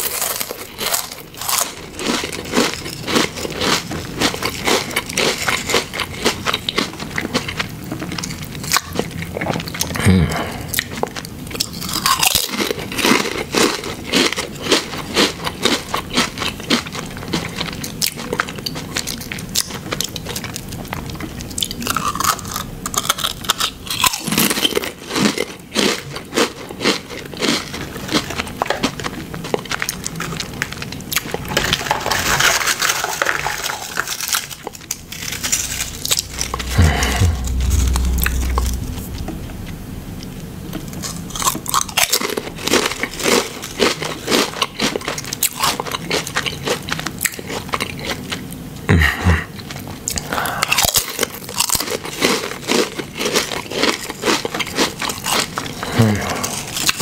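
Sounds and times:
chewing crunchy potato chips: 0:00.0 - 0:39.2, 0:41.0 - 0:57.0.

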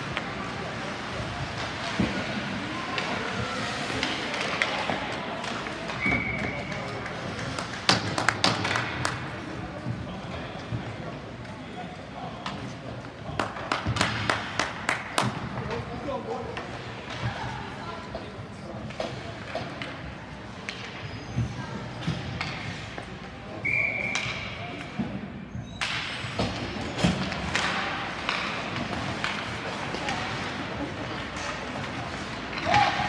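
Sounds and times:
hockey sticks and puck clacking: 0:00.0 - 0:11.7, 0:12.4 - 0:33.0
spectators' voices: 0:00.0 - 0:25.2.

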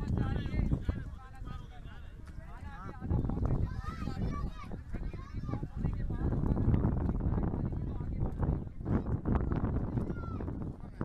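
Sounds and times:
voices talking indistinctly: 0:00.0 - 0:11.0.

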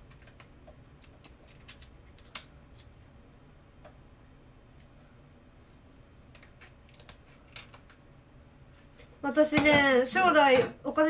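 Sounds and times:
crab shell clicks and snaps: 0:00.0 - 0:02.9, 0:06.3 - 0:08.0.

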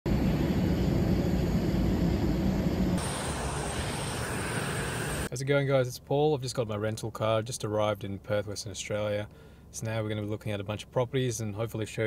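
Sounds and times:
jet airliners noise: 0:00.1 - 0:05.3.

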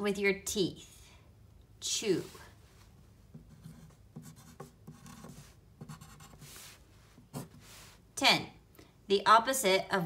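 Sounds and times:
pencil scratching on paper: 0:03.3 - 0:07.7.

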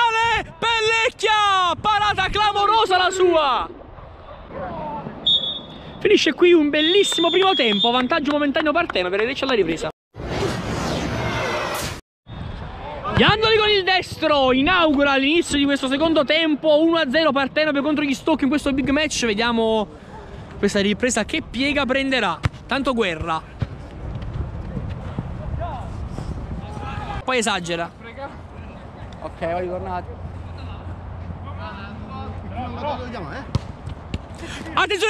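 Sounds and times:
rushing transition effect with swish: 0:10.2 - 0:12.6
faint outdoor ambience: 0:11.1 - 0:35.0.

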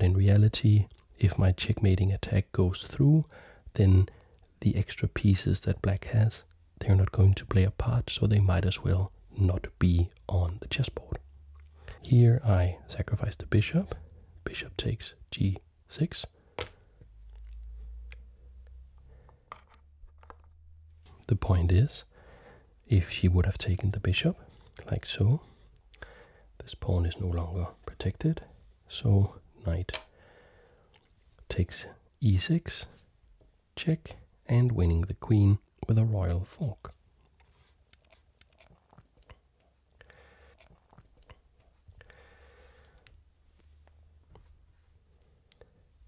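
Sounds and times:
chess pieces on wooden board: 0:19.3 - 0:20.6.

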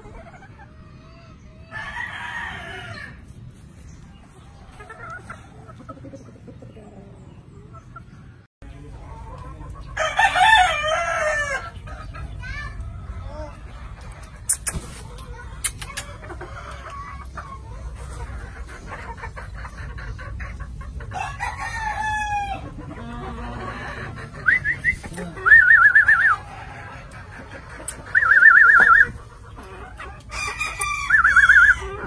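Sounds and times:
hens clucking: 0:00.0 - 0:32.0
rooster crowing: 0:10.0 - 0:11.6, 0:30.3 - 0:32.0.

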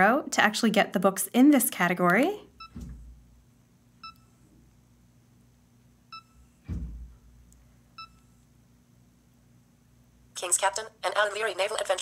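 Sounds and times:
low thump: 0:02.7 - 0:03.3, 0:06.6 - 0:07.4
short electronic beeps: 0:06.1 - 0:06.5.

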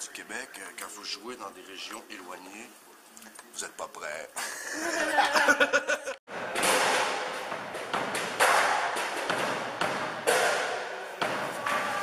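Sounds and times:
drum and cymbal hits echoing: 0:06.3 - 0:12.0.

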